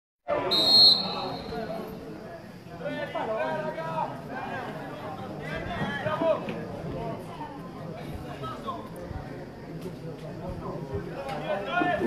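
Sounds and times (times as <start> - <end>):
people talking: 0.3 - 12.0
referee's whistle blast: 0.4 - 1.6.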